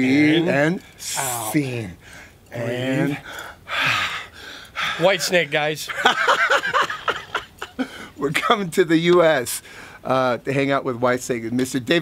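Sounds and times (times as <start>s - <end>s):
man speaking: 0.0s - 3.3s, 4.8s - 6.0s
man gasping: 3.2s - 5.2s.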